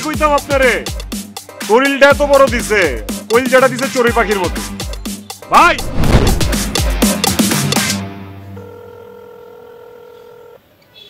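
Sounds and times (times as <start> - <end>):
phone calling tone beep: 8.6 - 10.6.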